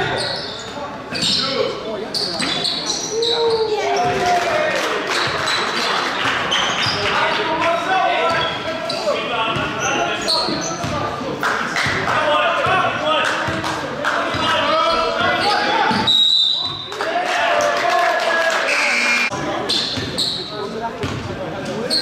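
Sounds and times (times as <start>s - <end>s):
players calling out: 14.3s - 19.4s.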